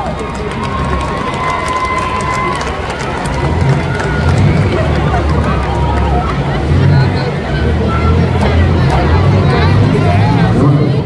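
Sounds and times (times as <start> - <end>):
car engines rumbling: 0.0 - 11.0
crowd shouting: 0.0 - 11.0.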